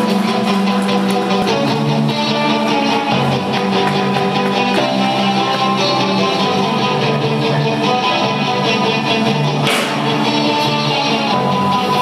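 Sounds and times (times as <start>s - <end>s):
rock band playing live: 0.0s - 12.0s.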